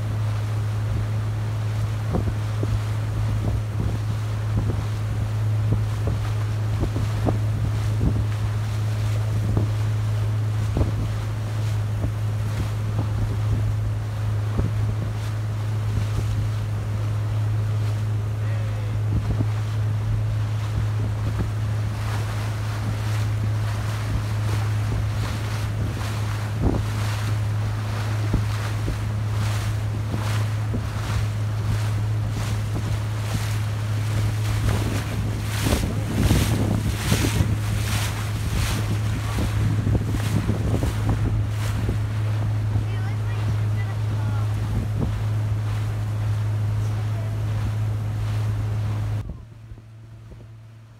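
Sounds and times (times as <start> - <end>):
wind buffeting microphone: 0.0 - 50.8
boat motor droning: 0.0 - 50.9
rush of boat wake: 0.0 - 50.9.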